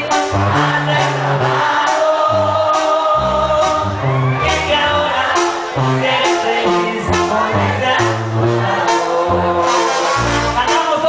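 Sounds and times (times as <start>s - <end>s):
bass line: 0.0s - 11.0s
man singing into a microphone: 0.0s - 11.0s.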